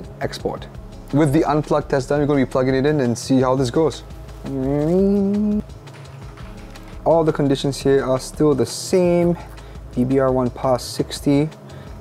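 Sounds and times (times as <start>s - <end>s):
quiet background music: 0.0s - 12.0s
man humming: 4.4s - 5.7s.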